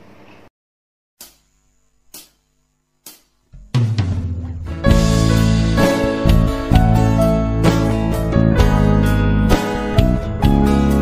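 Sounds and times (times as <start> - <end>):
band playing with drums: 3.6 - 11.0.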